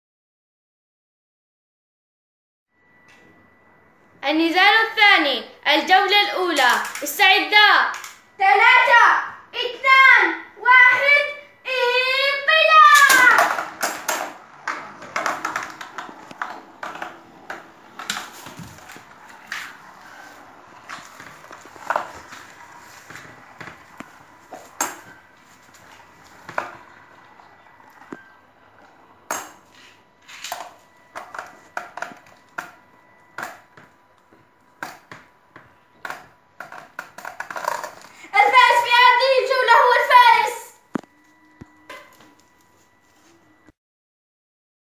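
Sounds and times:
children shouting: 9.8s - 13.8s
sharp clacks of tops colliding: 13.0s - 17.2s.

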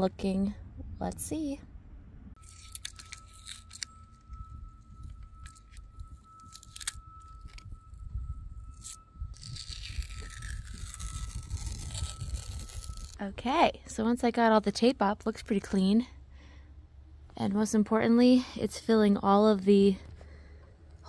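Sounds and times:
tape peeling and tearing: 2.4s - 4.2s, 6.4s - 7.6s, 8.7s - 13.2s.

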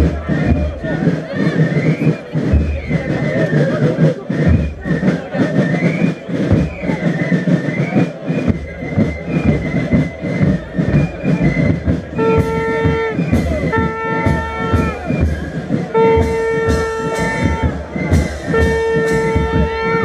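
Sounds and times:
crowd noise: 0.0s - 20.0s
brass band playing: 8.6s - 20.0s
bass drum beat: 11.6s - 20.0s
loud horn note: 12.2s - 15.0s, 15.9s - 17.8s, 18.5s - 20.0s.

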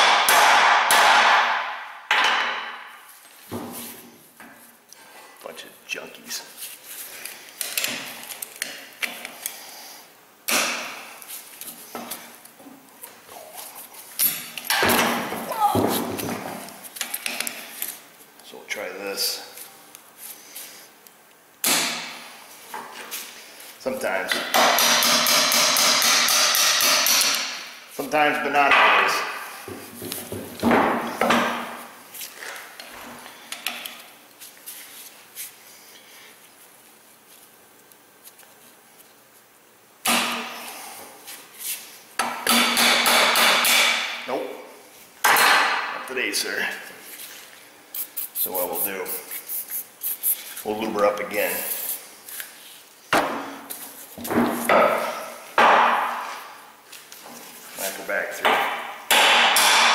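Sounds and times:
rapid metal hammering: 24.5s - 27.6s, 58.6s - 59.9s
sharp knocks: 55.6s - 56.2s.

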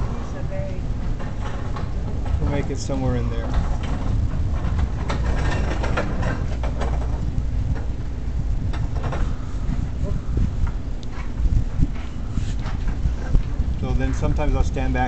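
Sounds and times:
steady low rumble: 0.0s - 15.0s.

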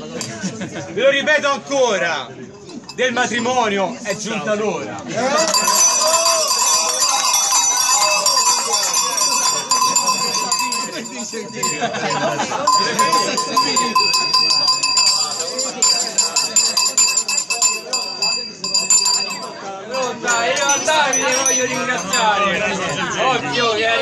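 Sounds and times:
people talking: 0.0s - 24.0s
bells jingling and clanking: 2.6s - 4.3s, 5.3s - 23.4s.

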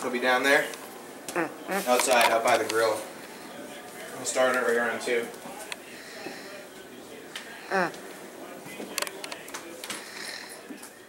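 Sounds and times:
faint indistinct talk: 1.3s - 11.0s.

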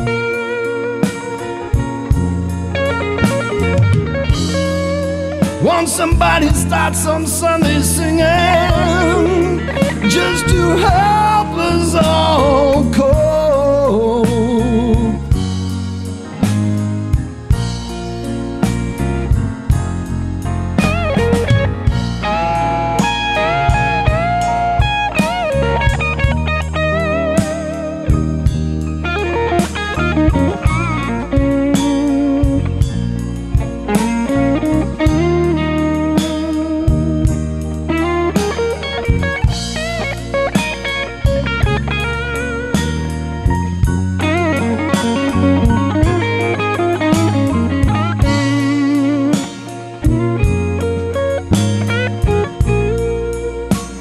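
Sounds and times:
bass line: 0.0s - 54.0s
drums: 0.0s - 54.0s
electric guitar lead with vibrato: 0.0s - 54.0s.

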